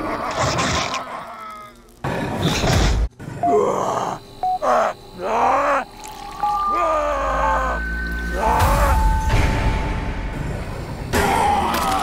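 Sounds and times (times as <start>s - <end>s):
creature groaning and moaning: 0.0s - 2.5s, 3.2s - 5.9s, 6.6s - 9.0s, 11.1s - 12.0s
dark ambient music: 3.4s - 12.0s.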